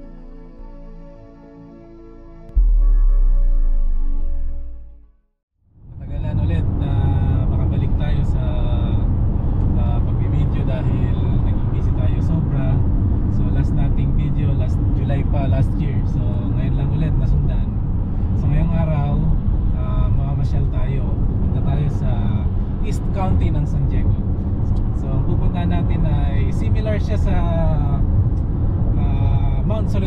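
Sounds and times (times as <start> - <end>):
car engine rumble: 5.8 - 30.0.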